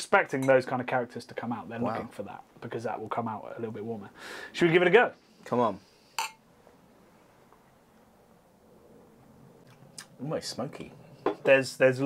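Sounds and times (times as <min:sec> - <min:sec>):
beer glasses clinking: 0:06.2 - 0:06.4.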